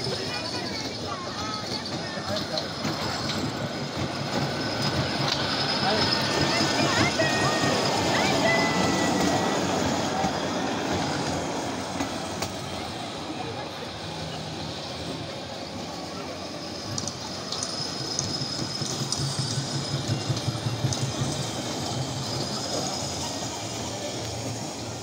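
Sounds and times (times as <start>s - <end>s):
ride train motor hum: 0.0s - 25.0s
train wheel clicks: 0.1s - 12.7s, 16.8s - 24.8s.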